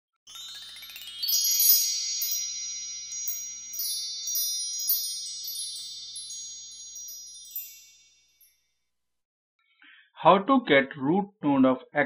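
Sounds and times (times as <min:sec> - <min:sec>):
high ringing chime tones: 0:00.3 - 0:08.8
tinkling notes: 0:00.3 - 0:08.9.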